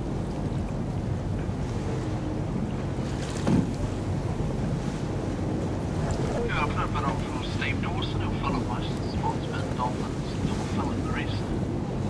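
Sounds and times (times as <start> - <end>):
boat engine humming: 0.0 - 12.0
choppy water: 0.0 - 12.0.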